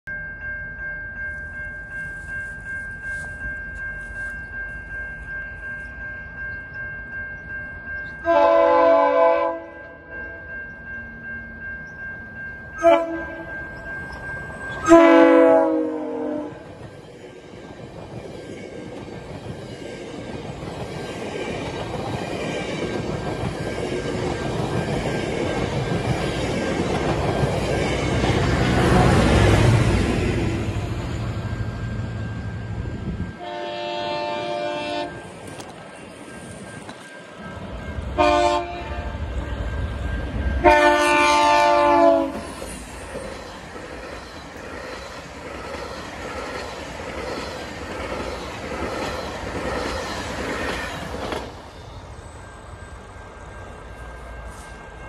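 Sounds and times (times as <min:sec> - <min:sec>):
train engine and wheels rumbling: 0:00.1 - 0:55.0
train horn blasts: 0:08.2 - 0:10.1, 0:12.8 - 0:13.6, 0:14.8 - 0:16.6, 0:33.4 - 0:35.2, 0:38.2 - 0:39.2, 0:40.6 - 0:42.5
coach wheels on rails: 0:09.5 - 0:55.0.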